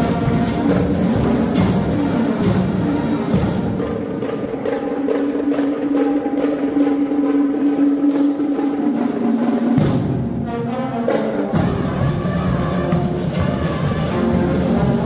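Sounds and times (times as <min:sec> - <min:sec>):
drum strokes: 0:00.0 - 0:15.0
marching band playing: 0:00.0 - 0:15.0.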